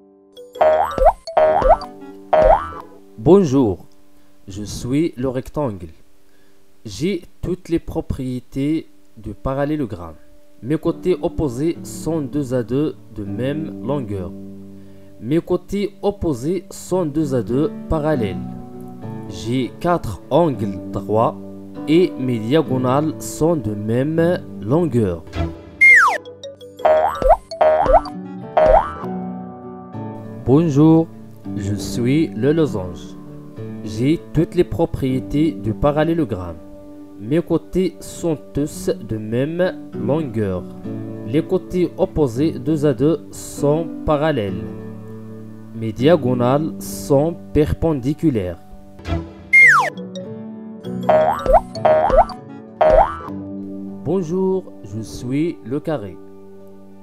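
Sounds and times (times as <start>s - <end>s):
light background music: 0.0s - 57.0s
cartoon boing sound effects: 0.6s - 3.0s, 25.8s - 26.2s, 26.8s - 29.1s, 49.6s - 50.0s, 51.1s - 53.3s
falling whistle: 25.8s - 26.2s, 49.6s - 50.0s
held keyboard chord: 49.6s - 53.5s.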